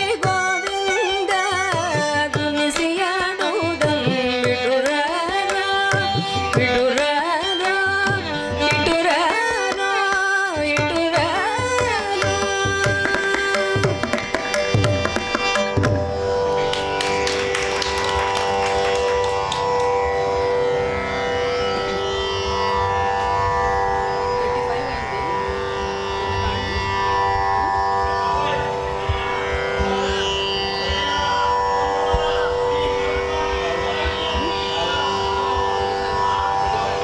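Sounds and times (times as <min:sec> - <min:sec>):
woman singing: 0:00.0 - 0:14.2
violin sustained notes: 0:00.0 - 0:37.0
hand drum strokes: 0:11.6 - 0:16.8
drone: 0:13.6 - 0:37.0.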